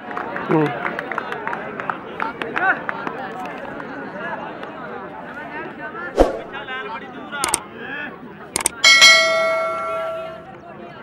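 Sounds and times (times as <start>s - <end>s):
quick clicks: 8.6s - 8.8s
bright bell ding: 8.6s - 10.4s.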